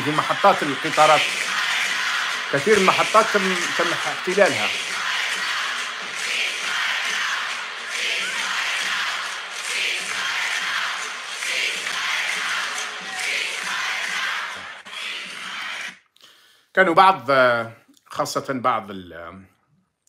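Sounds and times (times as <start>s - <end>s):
crowd chanting in unison: 0.0s - 16.0s.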